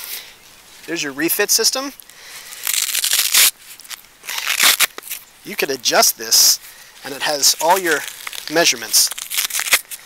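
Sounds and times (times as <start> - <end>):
hook-and-loop fastener ripping: 2.4 - 5.2, 7.4 - 10.0.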